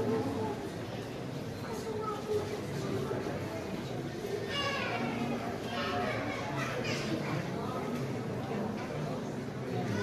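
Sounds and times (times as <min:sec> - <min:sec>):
indistinct chatter: 0:00.0 - 0:10.0
child's high voice: 0:04.5 - 0:07.4.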